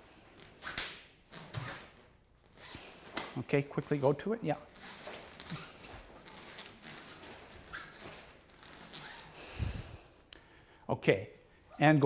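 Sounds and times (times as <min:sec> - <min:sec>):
fabric rustling: 0:04.6 - 0:10.0
short sharp breaths: 0:09.2 - 0:11.8.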